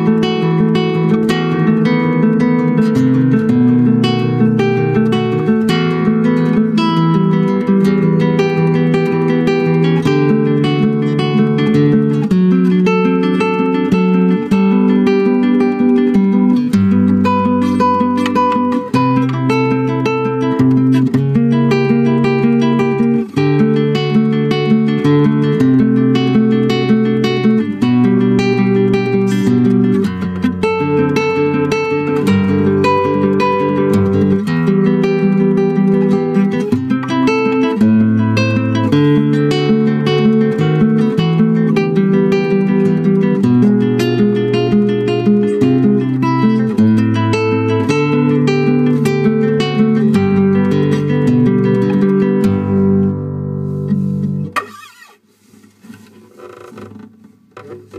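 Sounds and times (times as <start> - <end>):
acoustic guitar playing: 0.0 - 57.9.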